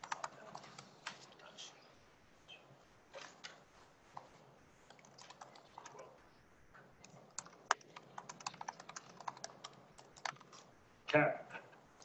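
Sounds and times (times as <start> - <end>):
keyboard typing: 0.0 - 1.5, 3.1 - 6.2, 6.8 - 10.8.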